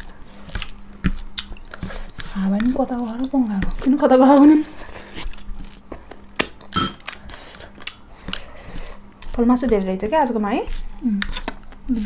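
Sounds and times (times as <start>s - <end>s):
chewing and wet mouth clicks: 0.5s - 4.5s, 7.8s - 8.5s, 9.2s - 9.8s.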